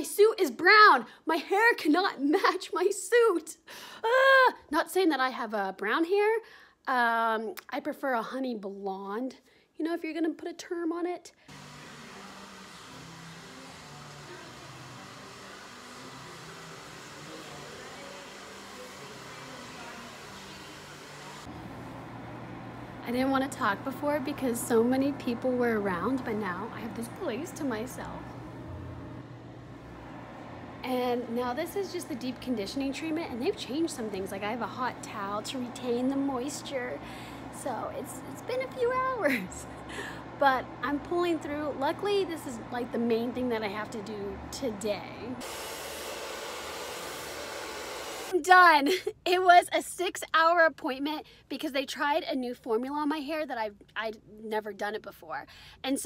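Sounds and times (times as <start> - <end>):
hair dryer blowing: 11.4 - 22.8, 45.4 - 48.4
low hum: 11.5 - 44.9.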